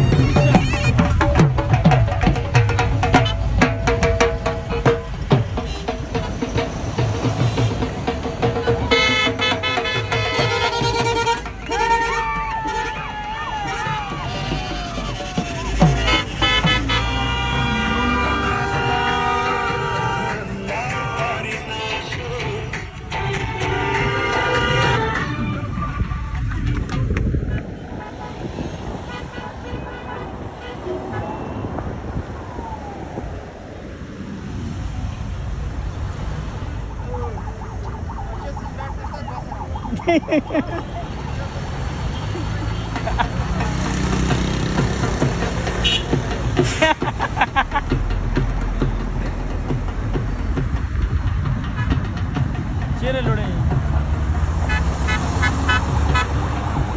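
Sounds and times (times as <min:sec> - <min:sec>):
traffic noise: 0:00.0 - 0:56.9
vehicles rumbling: 0:00.0 - 0:56.9
vehicle horns honking: 0:04.7 - 0:06.2, 0:07.4 - 0:08.1, 0:08.8 - 0:22.1, 0:23.0 - 0:26.2, 0:27.8 - 0:31.8, 0:45.8 - 0:46.2, 0:54.7 - 0:56.7
people laughing: 0:39.9 - 0:41.5, 0:42.2 - 0:43.8, 0:46.6 - 0:48.1.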